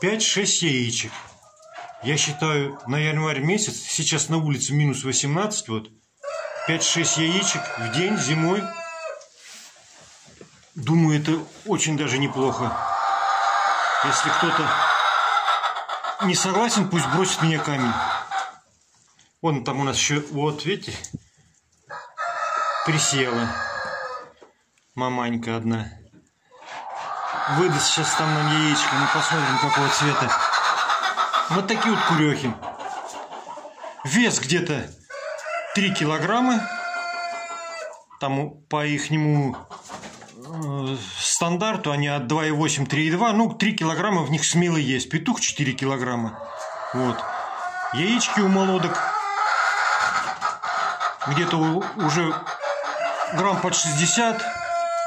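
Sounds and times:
chickens calling: 0.0 - 25.3, 26.0 - 42.0, 42.6 - 55.0
rooster crowing: 52.9 - 55.0.

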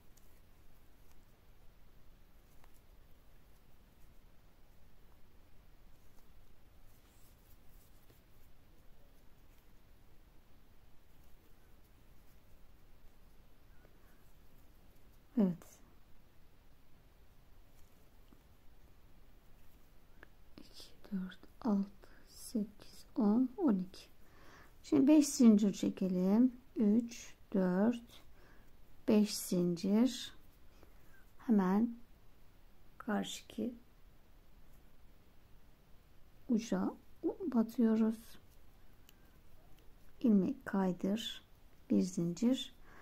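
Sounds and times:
crochet hook working yarn: 0.0 - 4.8
woman speaking quietly: 15.3 - 15.8, 20.6 - 24.2, 33.0 - 33.8, 36.5 - 38.4, 40.2 - 42.8.

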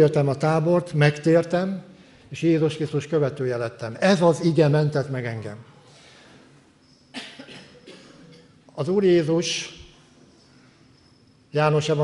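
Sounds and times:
person coughing: 7.1 - 8.6.

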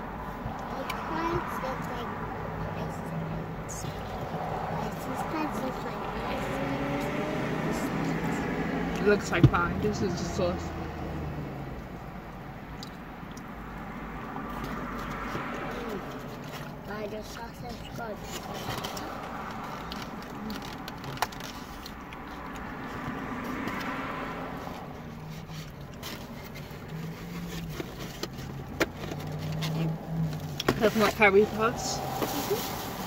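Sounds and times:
passing traffic: 0.0 - 33.0
food containers scraping: 14.6 - 24.0, 24.6 - 33.0
plastic bag rustling: 26.0 - 33.0.

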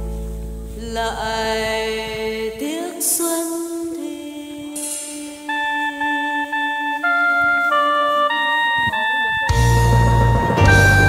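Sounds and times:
slow melody of sustained notes: 0.0 - 11.0
held low note: 4.6 - 11.0.

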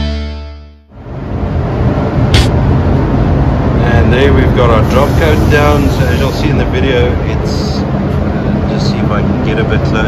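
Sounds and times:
ventilation air rumble: 0.9 - 10.0.

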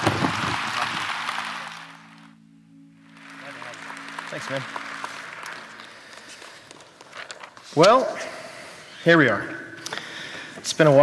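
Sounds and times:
congregation applauding: 0.0 - 2.4, 3.0 - 7.3.

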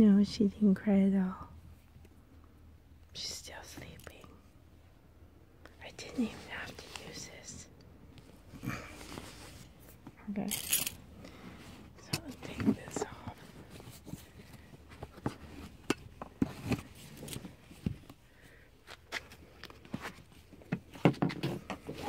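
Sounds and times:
handling clicks knocks and rustles: 9.9 - 11.0, 12.0 - 18.2.

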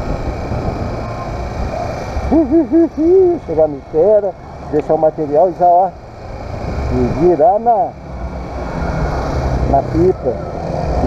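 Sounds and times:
motorcycle engine rumbling: 0.0 - 11.0.

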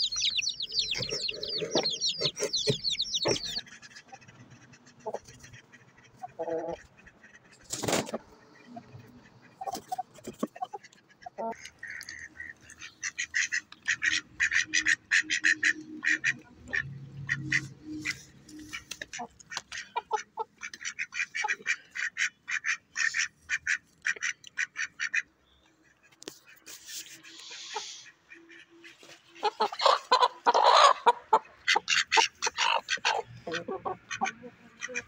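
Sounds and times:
duck quacking rapidly: 0.2 - 7.6, 10.6 - 25.3, 29.4 - 35.0.

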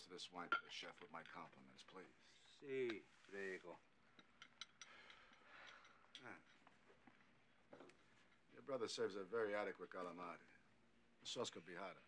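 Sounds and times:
tableware clinking: 4.1 - 6.7.

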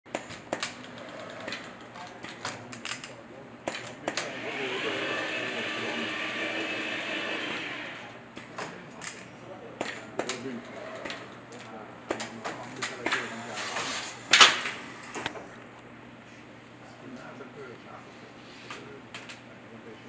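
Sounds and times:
motor whirring: 4.1 - 8.2.

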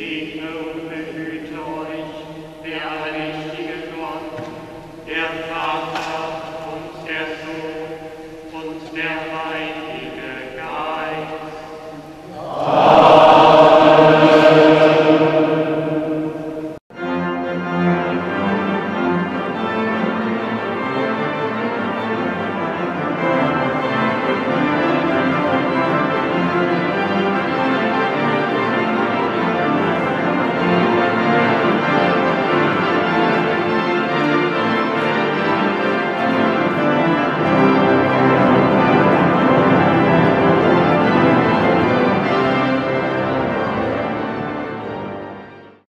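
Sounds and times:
sung chant: 0.0 - 16.8
organ music: 0.0 - 45.8.

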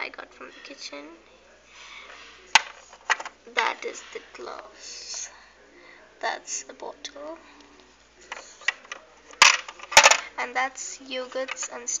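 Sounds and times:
sharp plastic clack: 2.6 - 3.3, 8.3 - 10.3
plastic toy pieces clattering: 8.3 - 10.3.

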